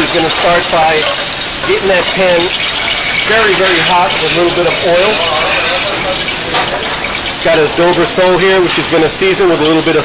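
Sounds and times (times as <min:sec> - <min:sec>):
oil sizzling in a pan: 0:00.0 - 0:10.0.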